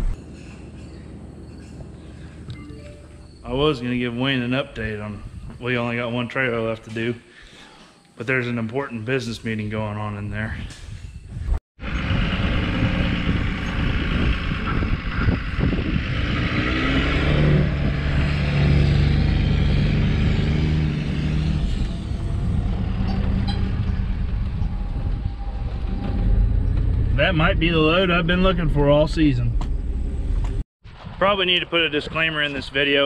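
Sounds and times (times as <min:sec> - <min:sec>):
road and rolling noise: 0:11.8 - 0:30.6
truck engine hum: 0:11.8 - 0:30.6.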